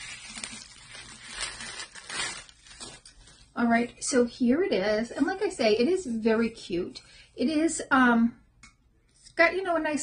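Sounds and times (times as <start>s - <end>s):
bubble wrap rustling and crinkling: 0.0s - 3.9s.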